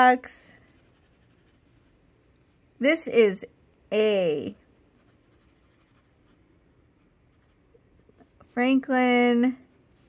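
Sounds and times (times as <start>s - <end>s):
pen nib scratching on paper: 0.4s - 1.9s, 4.8s - 6.4s, 7.0s - 8.8s.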